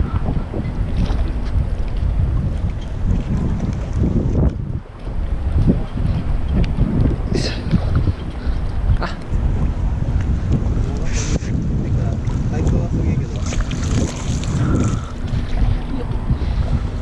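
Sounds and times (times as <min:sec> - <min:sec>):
gusty wind buffeting microphone: 0:00.0 - 0:17.0.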